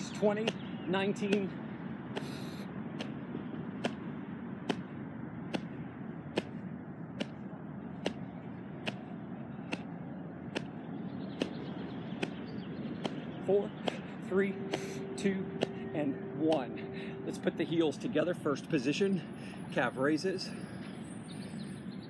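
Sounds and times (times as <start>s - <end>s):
sharp taps: 2.1s - 3.2s, 3.8s - 4.9s, 5.5s - 6.6s, 7.2s - 7.4s, 8.0s - 10.8s, 11.4s - 11.6s, 12.2s - 12.4s, 13.0s - 14.1s.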